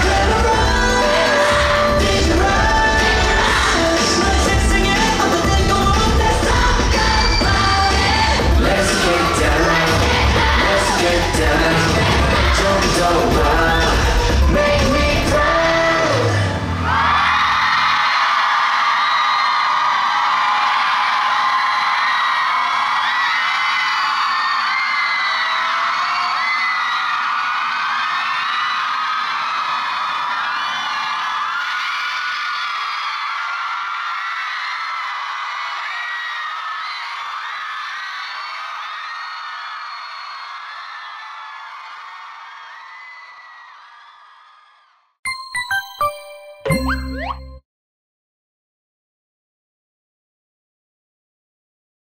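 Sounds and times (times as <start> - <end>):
song: 0.0 - 16.5, 45.3 - 47.6
crowd screaming and cheering: 0.0 - 47.6.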